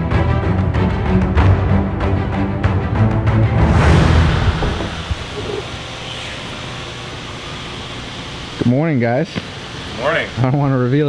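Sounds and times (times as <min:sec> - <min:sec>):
music: 0:00.0 - 0:06.7
workshop hiss and hum: 0:04.5 - 0:11.0.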